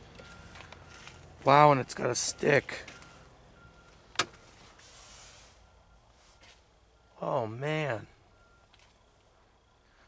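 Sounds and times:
faint even hiss: 4.6s - 6.7s.

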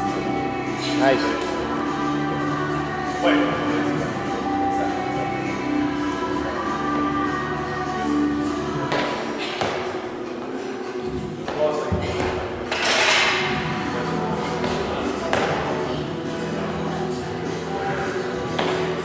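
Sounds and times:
background music: 0.0s - 19.0s.

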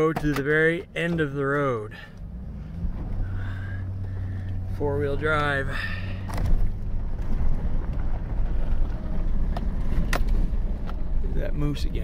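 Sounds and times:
truck engine and tyres rumbling: 0.0s - 12.0s
truck knocks and rattles: 6.2s - 11.2s.

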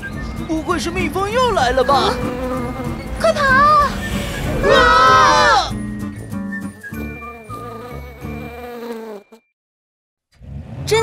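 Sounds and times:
cartoon bees buzzing: 1.6s - 5.7s, 6.6s - 9.5s.

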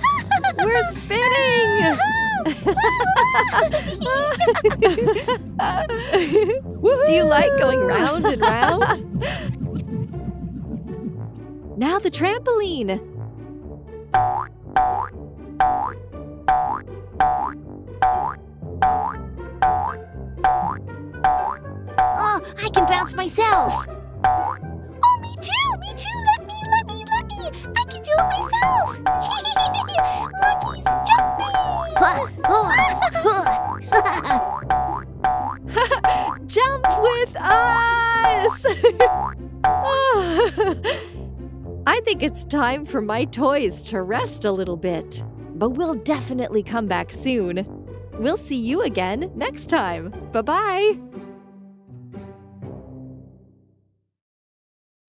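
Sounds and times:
light background music: 0.0s - 53.3s
cartoon boing sound effect: 14.2s - 23.0s, 28.2s - 37.1s, 39.0s - 40.0s.

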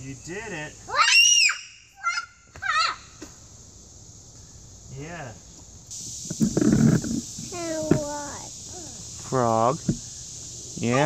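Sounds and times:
steady high hiss: 0.0s - 11.0s
young child vocalizing: 7.5s - 9.1s.

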